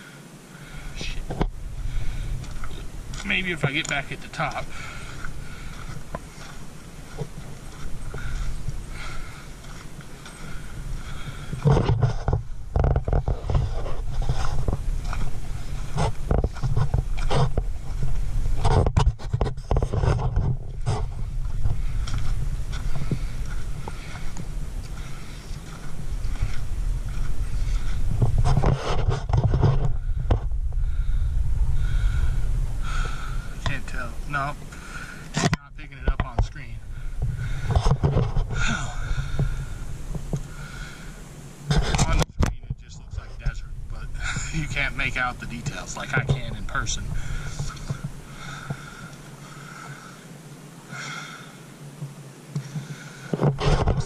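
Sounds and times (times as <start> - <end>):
wind rumbling on microphone: 0.0 - 54.0
footsteps crunching on gravel: 0.9 - 31.0, 31.7 - 50.2.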